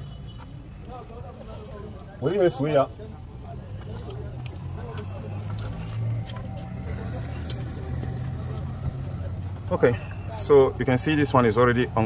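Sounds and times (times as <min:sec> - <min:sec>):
engine running: 0:04.6 - 0:10.2.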